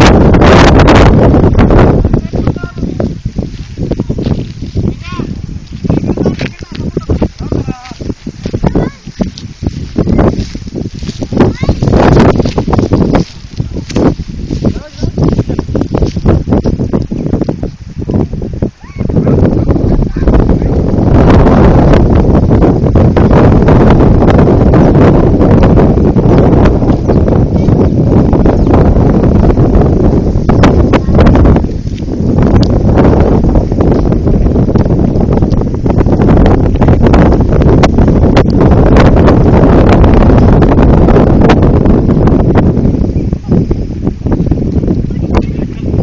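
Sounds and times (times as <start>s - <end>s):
wind buffeting microphone: 0.0s - 46.0s
scattered crackles: 2.2s - 17.8s.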